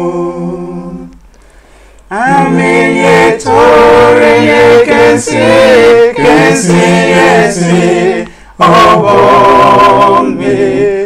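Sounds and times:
male a cappella harmony singing: 0.0 - 1.2, 2.1 - 11.0.

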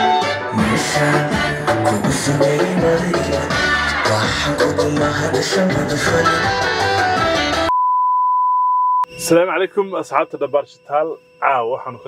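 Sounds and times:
test tone beep: 7.7 - 12.0
man talking: 9.1 - 12.0.

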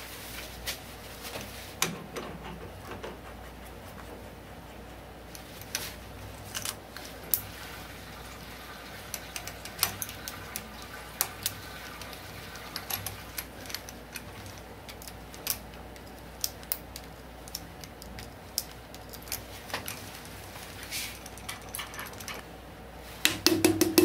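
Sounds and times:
low steady hum: 0.0 - 24.0.

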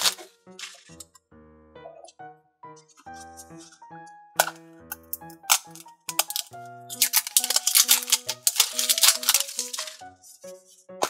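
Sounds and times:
light background music: 0.0 - 11.0
plastic toy capsule clicking: 4.4 - 10.0.

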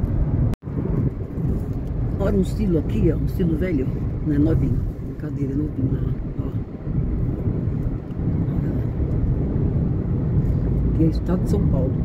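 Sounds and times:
car driving on highway interior: 0.0 - 12.0.

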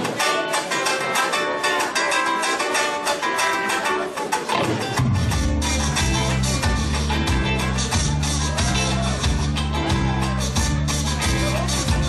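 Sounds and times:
strummed and picked guitars: 0.0 - 12.0
deep bass: 5.0 - 12.0.

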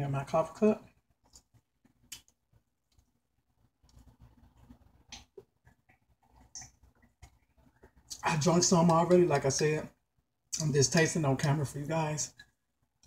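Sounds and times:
sipping and swallowing tea: 1.2 - 8.2.

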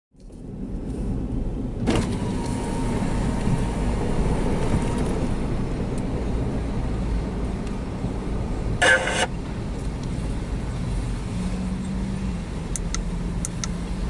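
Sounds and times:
car engine low rumble: 0.1 - 14.0
faint steady whine: 8.8 - 9.4.

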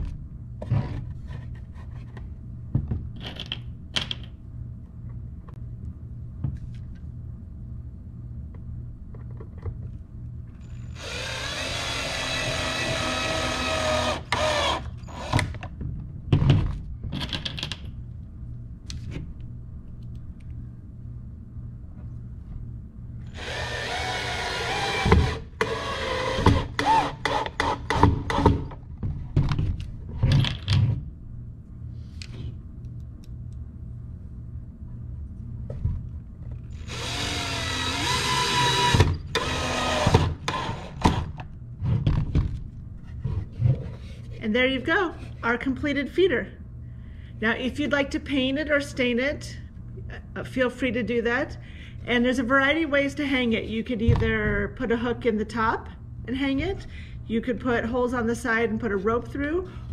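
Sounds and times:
cordless drill whining: 10.9 - 15.5, 23.3 - 27.8, 36.8 - 41.1
drill clicks: 11.0 - 15.6, 23.3 - 28.4, 36.8 - 41.2.

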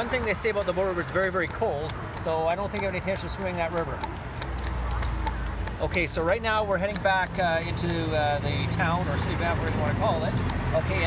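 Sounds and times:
horse hooves clip-clopping: 0.0 - 11.0.

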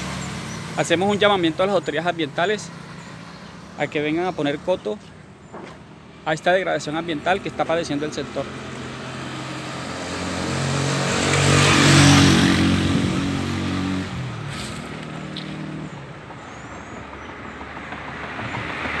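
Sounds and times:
vehicle passing by: 0.0 - 19.0.

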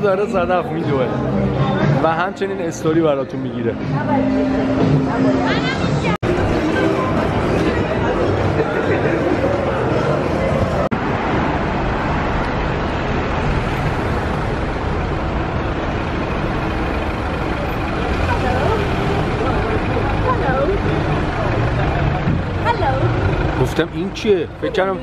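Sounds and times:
people's voices: 0.0 - 10.9, 16.6 - 25.0
passing cars and buses: 0.0 - 25.0.

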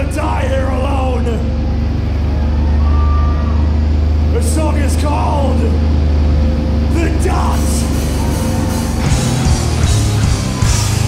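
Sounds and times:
amplifier low hum: 0.0 - 11.0
man speaking over pa: 6.9 - 8.0.

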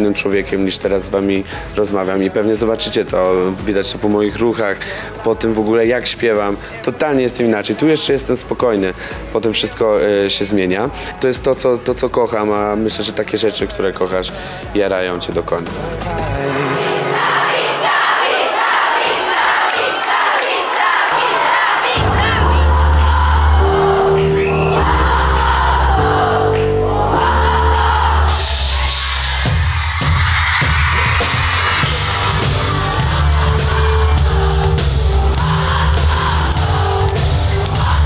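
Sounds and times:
live pop music with heavy bass: 13.6 - 17.4, 22.0 - 38.0
crowd screaming and singing: 15.5 - 38.0.

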